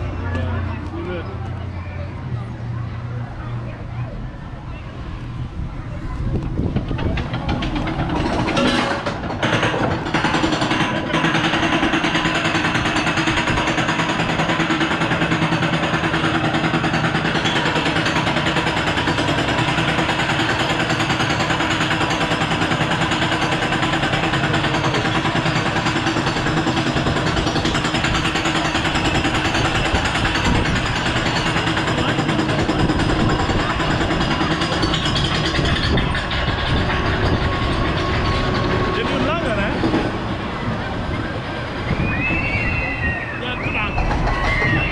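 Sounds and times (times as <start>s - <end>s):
roller coaster lift chain clatter: 3.4s - 44.9s.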